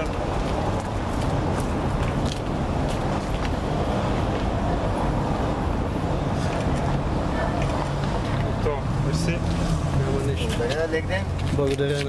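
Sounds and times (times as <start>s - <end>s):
street traffic hum: 0.0s - 12.0s.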